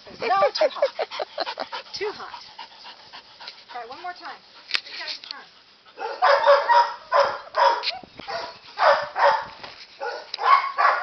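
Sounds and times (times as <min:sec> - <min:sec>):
dog barking roughly: 0:06.0 - 0:11.0.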